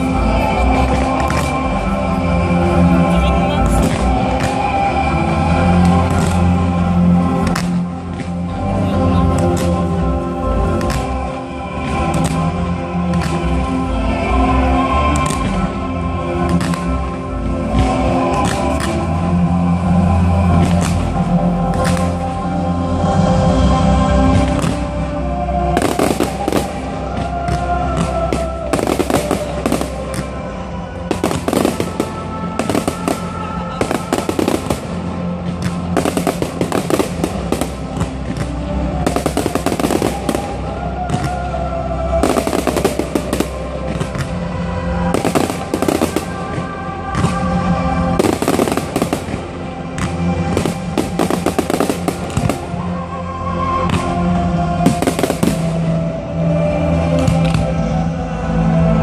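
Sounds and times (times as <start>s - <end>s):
fireworks bursting: 0.0s - 4.9s, 10.6s - 13.7s, 25.7s - 30.4s, 31.0s - 41.5s, 42.2s - 44.4s, 45.0s - 53.0s, 54.8s - 56.0s
music: 0.0s - 59.0s.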